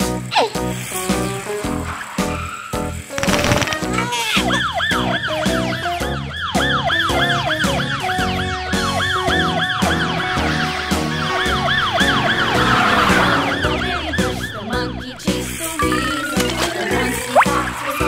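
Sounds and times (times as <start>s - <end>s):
background music: 0.0s - 18.0s
police siren: 4.4s - 15.3s.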